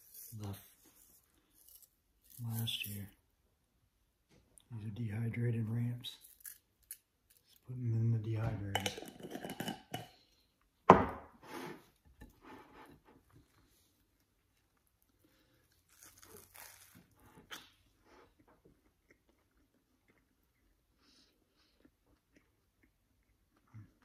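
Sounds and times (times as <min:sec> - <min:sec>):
crunching and chewing: 0:13.4 - 0:24.0.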